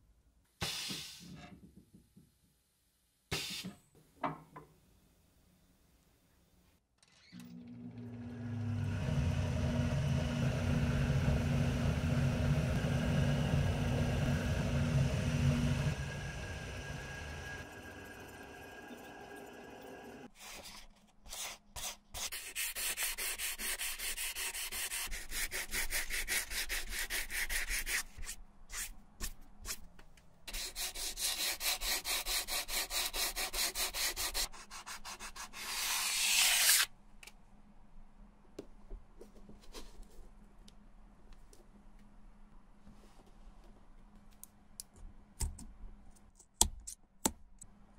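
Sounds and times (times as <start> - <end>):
machine humming: 7.5 - 20.3
sandpaper rasping on midsole: 21.4 - 29.4, 30.5 - 36.9.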